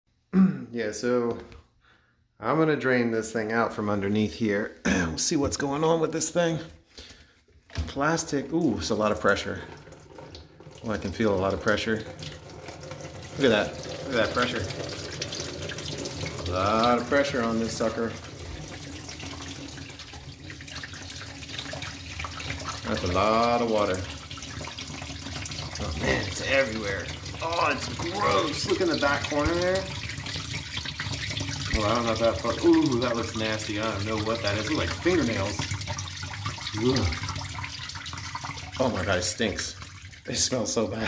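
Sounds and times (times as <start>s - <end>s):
water pouring into plastic tub: 5.6s - 40.9s.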